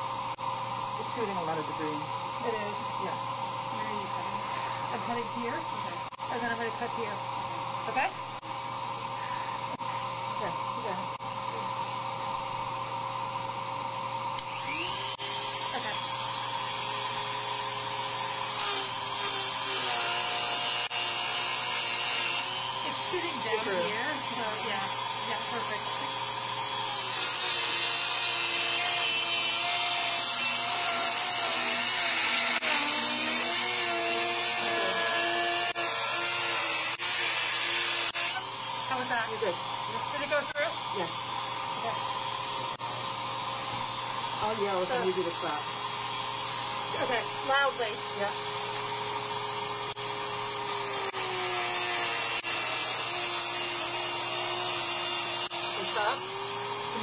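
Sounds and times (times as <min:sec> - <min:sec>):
rotary tool whine: 0:00.0 - 0:57.0
cutting disc grinding metal: 0:00.9 - 0:57.0.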